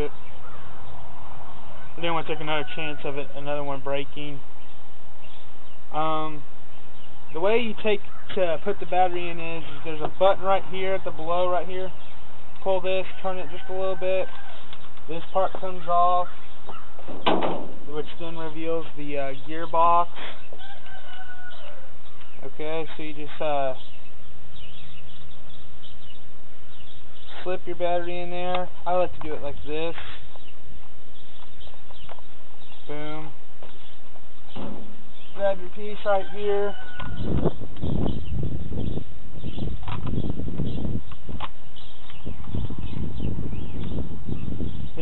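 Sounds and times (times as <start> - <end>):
drawn-out bird call: 0.0 - 22.8, 23.6 - 45.0
rustle: 9.2 - 43.0
steady low rumble: 14.1 - 20.6.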